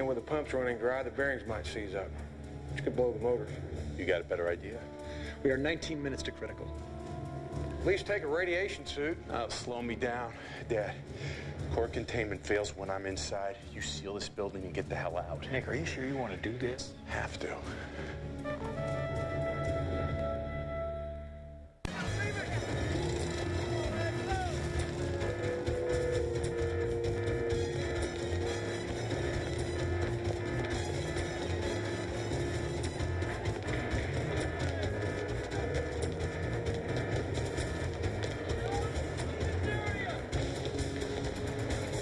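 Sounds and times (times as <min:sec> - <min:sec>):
tense film score: 0:00.0 - 0:42.0.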